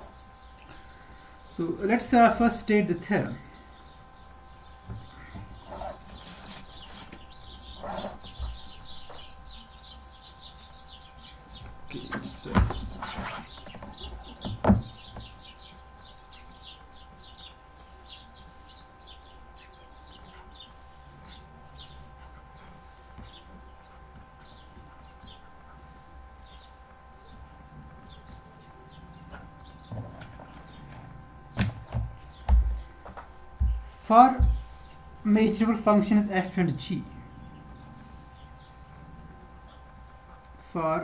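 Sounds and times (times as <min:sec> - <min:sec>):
faint electrical whine: 0:00.0 - 0:41.0
small bird chirping: 0:03.5 - 0:31.3
dull low thumps: 0:31.2 - 0:35.0.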